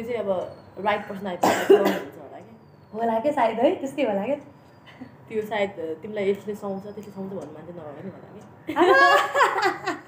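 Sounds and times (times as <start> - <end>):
woman speaking: 0.0 - 4.5, 5.3 - 9.2
woman coughing: 1.4 - 2.2
woman laughing: 8.7 - 10.0.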